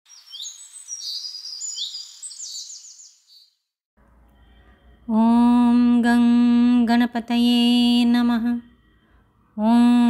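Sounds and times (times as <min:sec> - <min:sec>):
bird singing: 0:00.1 - 0:03.6.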